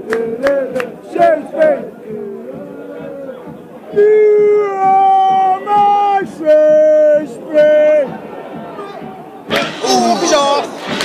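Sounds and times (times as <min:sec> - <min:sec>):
football supporters chanting: 0:00.0 - 0:11.0.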